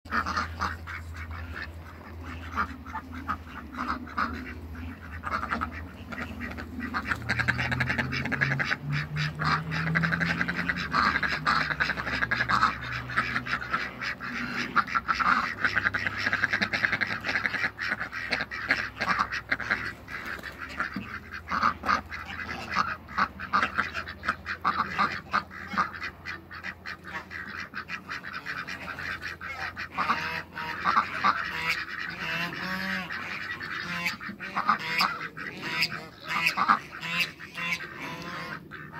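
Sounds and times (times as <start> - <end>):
ducks quacking: 0.1 - 38.9
low steady hum: 0.1 - 38.9.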